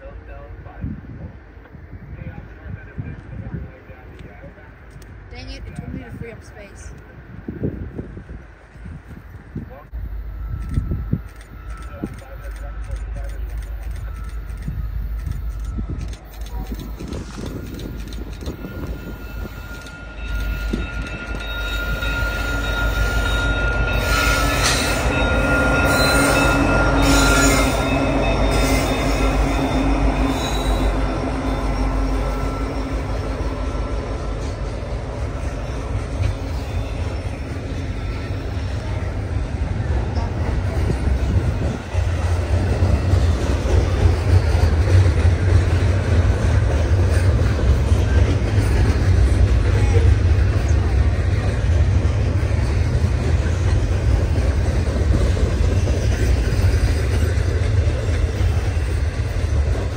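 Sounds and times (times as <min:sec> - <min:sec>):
freight cars rumbling and clattering: 0:00.0 - 0:59.9
freight train locomotives passing: 0:00.0 - 0:59.9.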